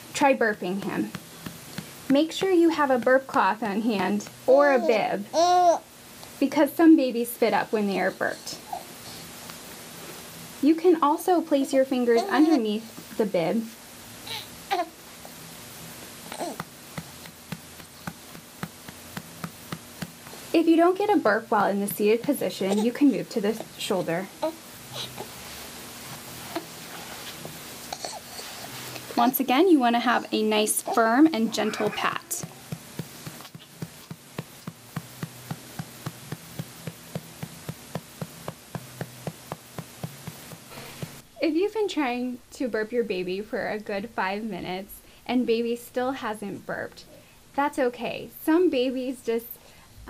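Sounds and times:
soft pats on baby's back: 0:00.9 - 0:03.5, 0:32.4 - 0:41.2
baby babbling: 0:04.5 - 0:05.8, 0:12.2 - 0:12.6, 0:14.2 - 0:15.0, 0:16.3 - 0:16.6, 0:22.7 - 0:23.0, 0:24.4 - 0:25.3, 0:27.9 - 0:28.5, 0:30.8 - 0:32.5.

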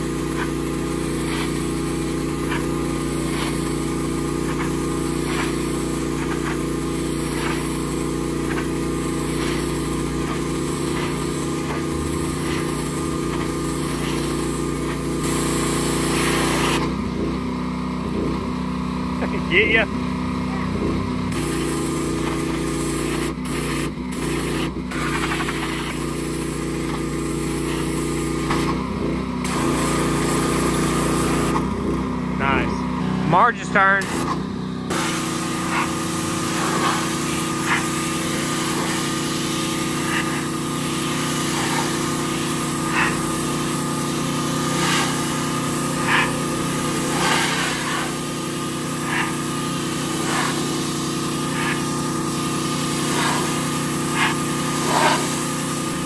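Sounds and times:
small engine running: 0:00.0 - 0:56.0.

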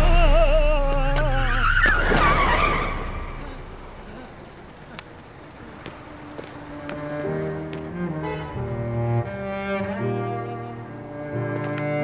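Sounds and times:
tyres squealing in a skid: 0:01.0 - 0:04.0.

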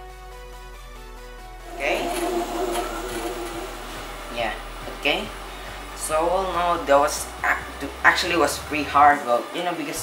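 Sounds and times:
soft background music: 0:01.6 - 0:05.4.

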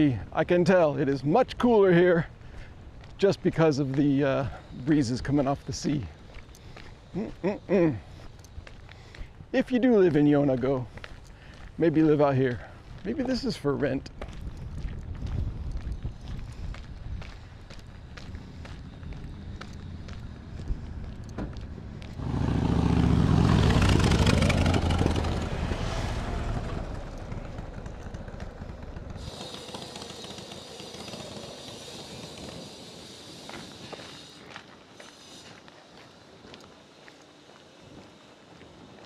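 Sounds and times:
footsteps on pavement: 0:01.4 - 0:22.2, 0:27.1 - 0:39.0
motorcycle passing: 0:18.1 - 0:34.2
car passing: 0:18.3 - 0:33.2.

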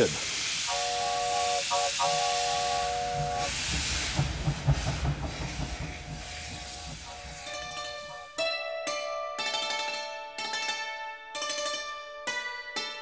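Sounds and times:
steam locomotive whistle: 0:00.0 - 0:04.3
steam hissing: 0:00.0 - 0:08.3
low thuds: 0:03.2 - 0:07.8.

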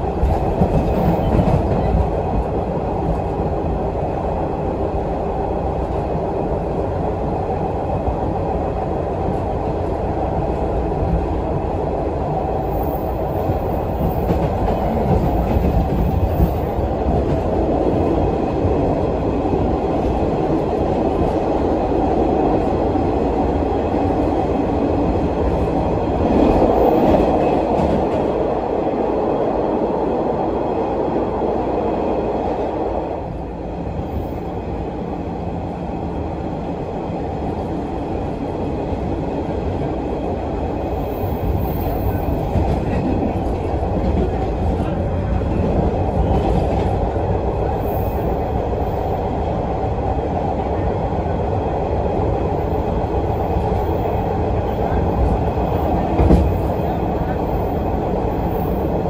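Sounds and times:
subway car wheels on rails: 0:00.0 - 0:59.0.

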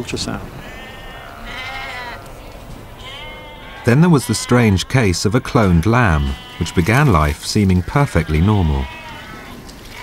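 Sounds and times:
sheep bleating: 0:00.6 - 0:10.0.

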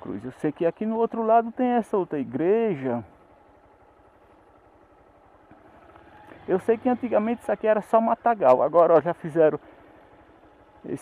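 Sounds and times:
faint engine running: 0:00.0 - 0:11.0.

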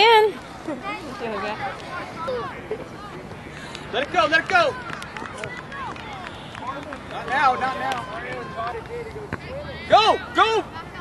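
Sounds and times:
distant shouting voices: 0:01.0 - 0:11.0.

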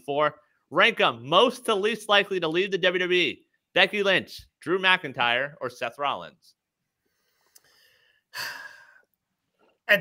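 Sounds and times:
man sighing: 0:08.3 - 0:09.1.

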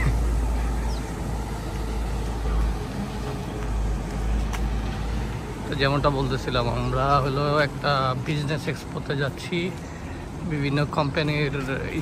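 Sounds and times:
low street rumble: 0:00.0 - 0:12.0.

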